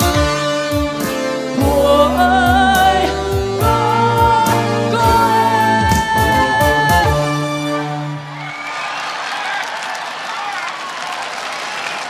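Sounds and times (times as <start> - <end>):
audience applause: 8.2 - 12.0.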